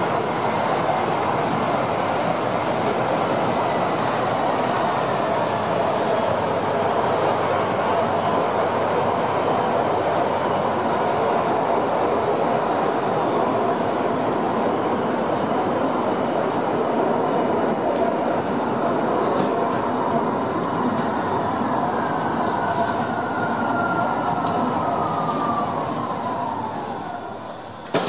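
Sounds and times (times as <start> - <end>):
rail car rolling rumble: 0.0 - 28.0.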